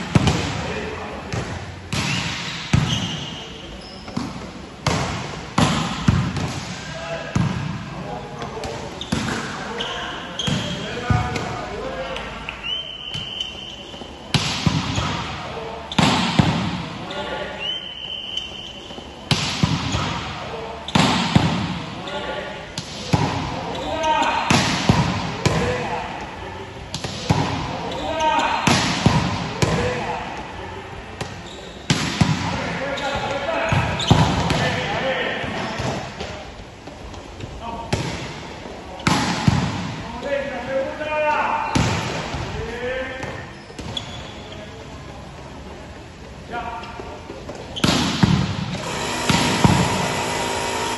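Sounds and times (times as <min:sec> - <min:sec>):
volleyball hits and bounces: 0:00.0 - 0:03.4, 0:04.1 - 0:09.7, 0:10.4 - 0:11.6, 0:13.9 - 0:17.0, 0:19.3 - 0:21.9, 0:22.7 - 0:25.9, 0:26.9 - 0:27.8, 0:28.5 - 0:30.0, 0:31.2 - 0:34.9, 0:39.0 - 0:40.0, 0:41.7 - 0:42.5, 0:47.8 - 0:50.9
sneaker squeaks on court floor: 0:02.0 - 0:04.4, 0:08.2 - 0:16.4, 0:17.1 - 0:21.2, 0:23.6 - 0:24.5, 0:27.9 - 0:28.7, 0:31.2 - 0:31.9, 0:32.9 - 0:34.7, 0:43.2 - 0:44.8.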